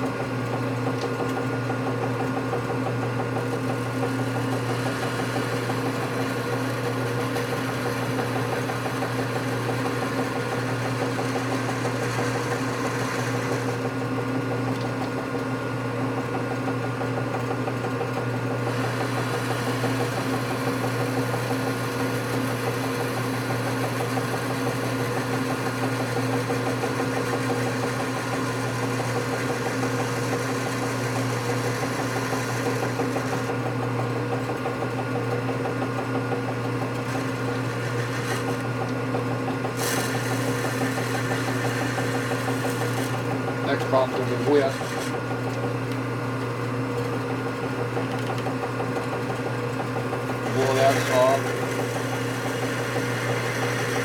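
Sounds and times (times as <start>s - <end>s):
metal lathe humming: 0.0s - 54.0s.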